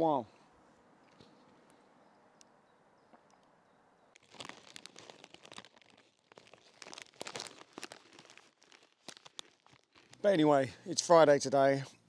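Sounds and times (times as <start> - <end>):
plastic snack packet crinkling: 4.1 - 10.4.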